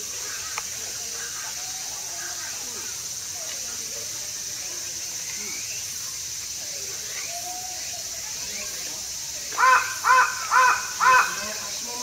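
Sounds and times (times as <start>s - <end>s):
crow cawing: 9.6s - 11.8s.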